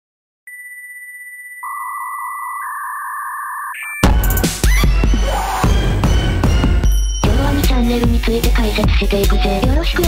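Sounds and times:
high electronic sine tone: 0.5s - 4.9s.

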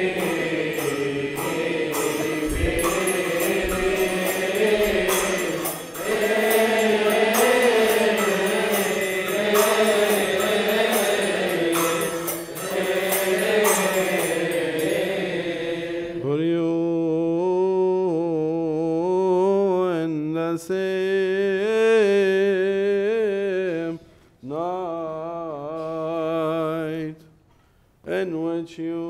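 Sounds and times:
metallic cymbal strikes: 0.0s - 16.2s
many voices chanting a hymn: 0.0s - 18.2s.

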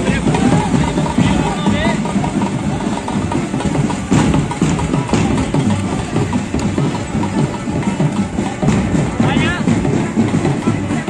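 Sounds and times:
music with drumming: 0.0s - 11.0s
vehicle engine running: 0.0s - 11.0s.

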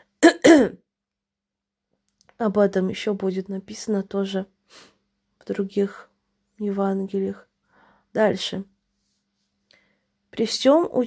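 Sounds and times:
woman clearing her throat: 0.2s - 0.8s.

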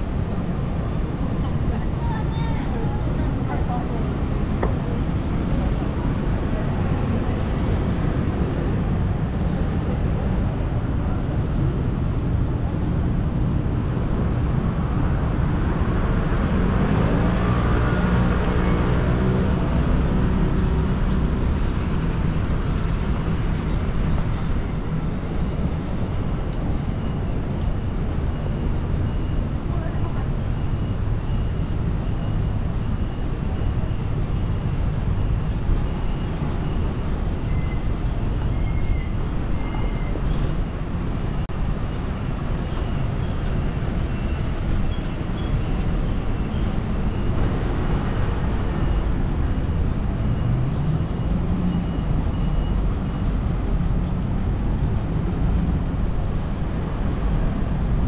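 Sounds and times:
road traffic rumble: 0.0s - 58.0s
vehicles passing: 0.0s - 58.0s.

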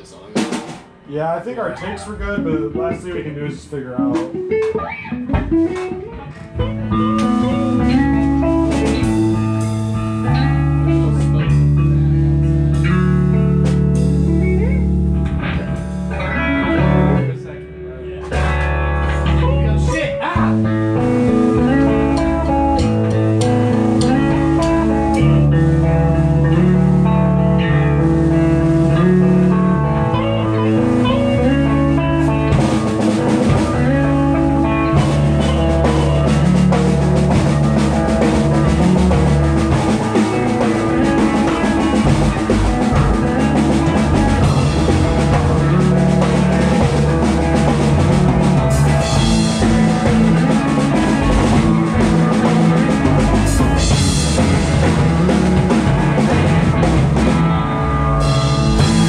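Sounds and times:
electric bass guitar: 0.0s - 59.0s
electric guitars playing chords: 0.0s - 59.0s.

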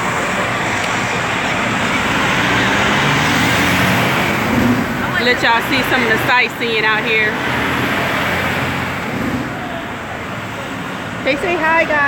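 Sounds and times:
passing vehicle rumble: 0.0s - 12.0s.

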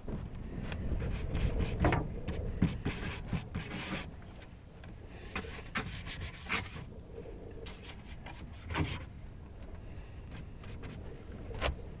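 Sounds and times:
paintbrush scrubbing on paper: 2.6s - 4.1s, 5.4s - 6.8s, 7.7s - 9.0s.

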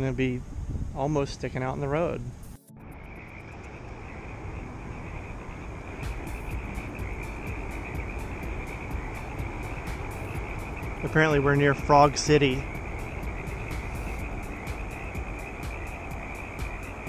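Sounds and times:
low rumble: 0.0s - 17.0s
frogs clicking calls: 2.4s - 17.0s
frogs trilling: 2.4s - 17.0s.

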